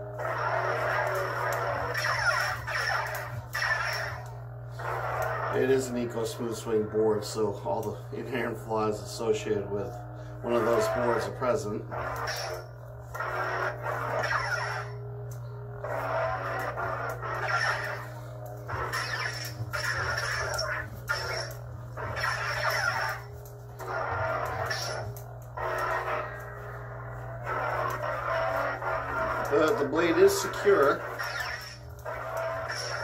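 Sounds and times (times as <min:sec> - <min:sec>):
lightsaber electronic hum: 0:00.0 - 0:33.0.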